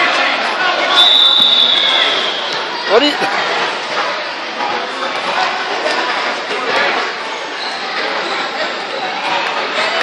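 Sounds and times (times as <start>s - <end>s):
high steady whistle: 0.9s - 2.6s.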